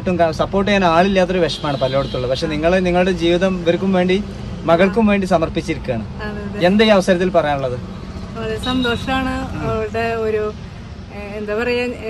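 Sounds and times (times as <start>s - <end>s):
car low hum: 0.0s - 12.0s
woman talking: 6.2s - 6.7s, 8.4s - 12.0s.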